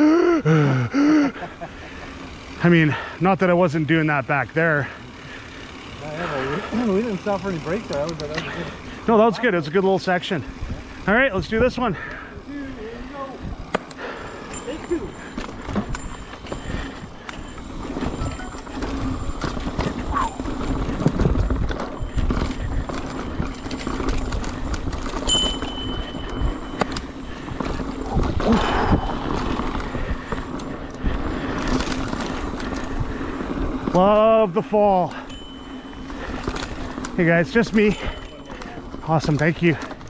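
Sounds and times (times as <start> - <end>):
bike rattling and knocking: 0.0 - 40.0
bike tyres rumbling on dirt trail: 0.0 - 40.0.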